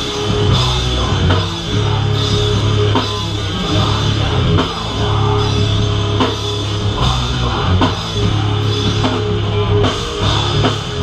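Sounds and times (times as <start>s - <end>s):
heavy rock band playing: 0.0s - 11.0s.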